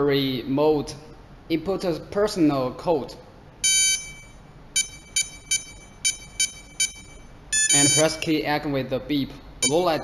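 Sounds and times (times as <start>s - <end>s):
short keypad beeps: 3.6s - 8.2s, 9.6s - 9.8s
long high-pitched electronic beep: 3.7s - 8.2s, 9.6s - 9.8s.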